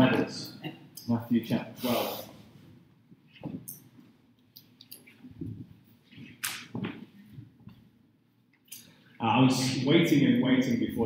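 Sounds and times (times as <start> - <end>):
rustling near microphone: 2.4 - 7.9.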